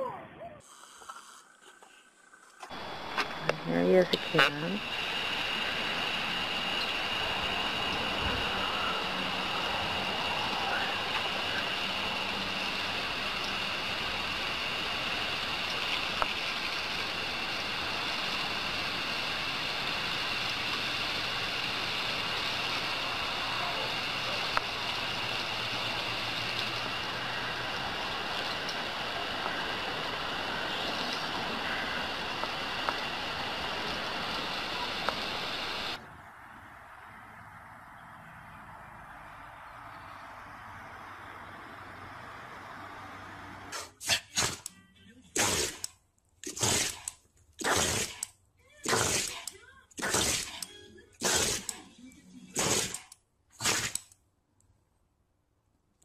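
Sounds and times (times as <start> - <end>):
garden hose spraying water: 0.6 - 36.0, 42.0 - 44.7, 45.3 - 54.2.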